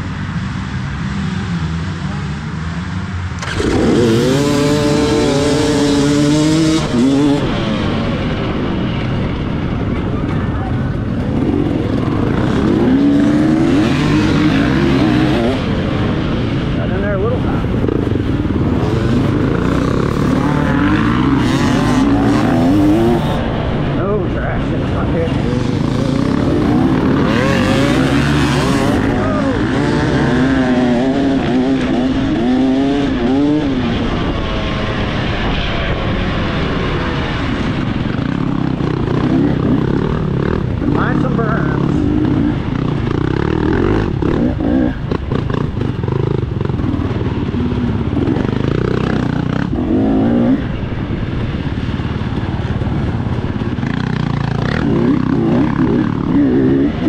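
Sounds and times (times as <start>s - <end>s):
dirt bike engine accelerating: 0.0s - 57.0s
other motorbike engines running: 0.0s - 57.0s.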